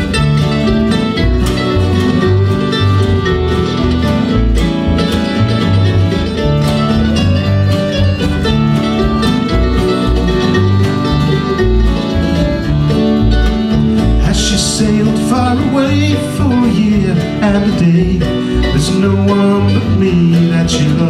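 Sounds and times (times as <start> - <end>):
mandolin: 0.0 - 21.0
plucked double bass: 0.0 - 21.0
strummed acoustic guitar: 0.0 - 21.0.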